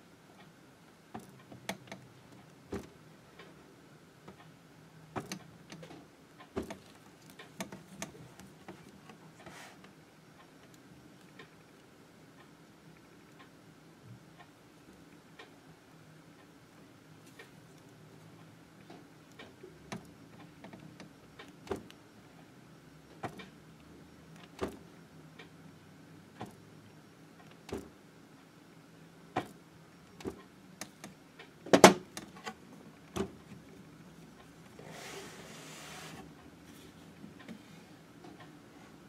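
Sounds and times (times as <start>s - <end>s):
low steady hum: 0.0s - 39.0s.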